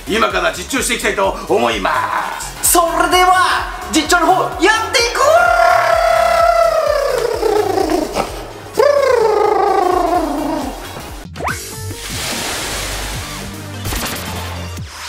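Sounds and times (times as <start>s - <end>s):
background music: 0.0s - 15.0s
drawn-out voice calls: 5.5s - 10.9s.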